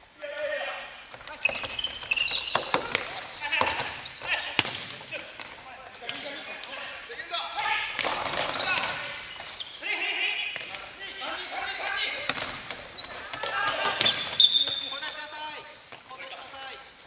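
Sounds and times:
players calling out with echo: 0.0 - 17.0
sneaker squeak: 0.5 - 6.6, 7.6 - 15.4.

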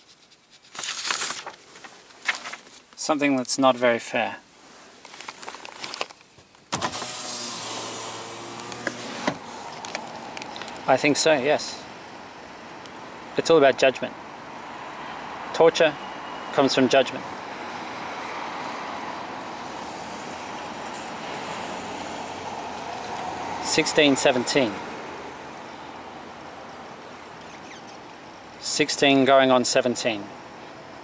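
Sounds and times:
electric window motor whirring: 6.7 - 10.4, 19.4 - 23.6
road traffic noise: 6.7 - 31.0.

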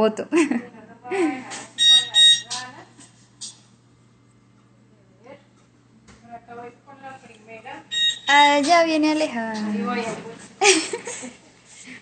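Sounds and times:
oven timer beeping: 1.8 - 2.7, 7.8 - 9.1.

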